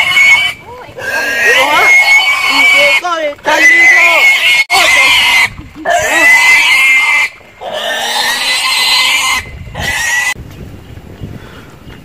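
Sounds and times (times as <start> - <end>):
pig squealing: 0.0 - 10.4.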